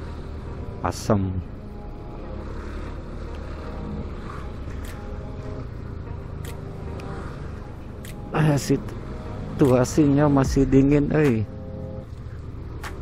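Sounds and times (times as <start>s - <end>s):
road and wind rumble: 0.0s - 13.0s
scooter engine running: 2.1s - 13.0s.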